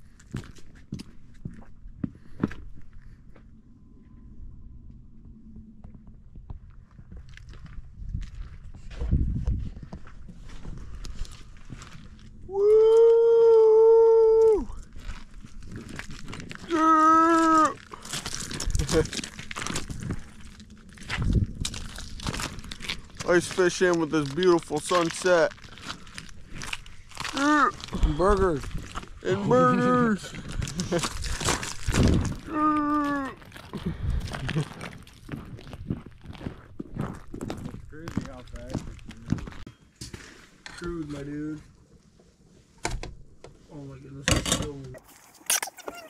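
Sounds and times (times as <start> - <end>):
crunching and crackling: 6.5 - 9.0, 9.8 - 42.4
long held yells: 12.5 - 14.8, 16.7 - 17.8
person's held voice: 29.2 - 30.2.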